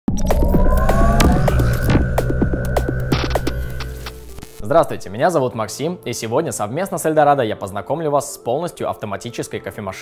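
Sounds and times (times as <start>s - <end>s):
low droning hum: 0.2s - 5.1s.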